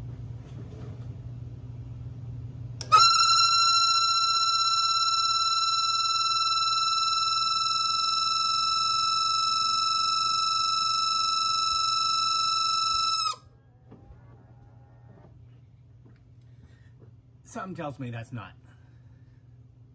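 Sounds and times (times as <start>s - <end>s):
blower motor high-pitched squeal: 2.9s - 13.4s.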